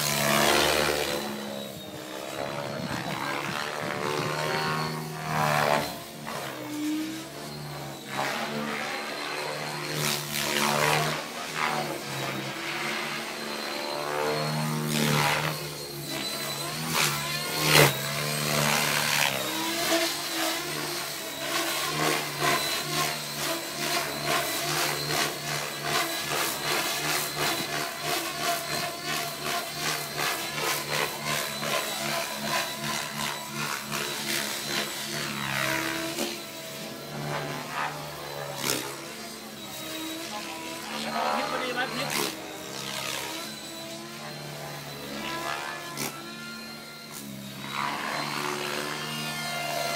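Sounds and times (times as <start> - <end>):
helicopter rotor whoosh: 0.0 - 45.8
rc helicopter high whine: 0.0 - 49.9.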